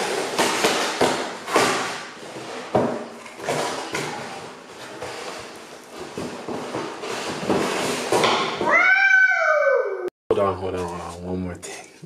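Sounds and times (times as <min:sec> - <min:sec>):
child squealing: 0:08.6 - 0:10.1.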